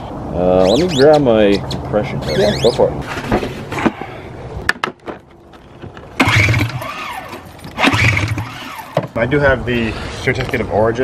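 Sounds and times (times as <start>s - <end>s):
recoil pull-starter cranking engine: 6.2s - 9.2s.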